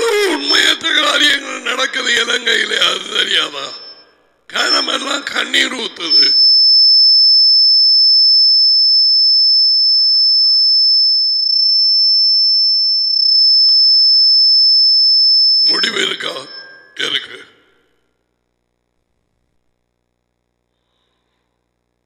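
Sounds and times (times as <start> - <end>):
man's voice: 0.0 - 3.9, 4.5 - 6.4, 15.7 - 17.7
high-pitched electronic tone: 0.0 - 7.2.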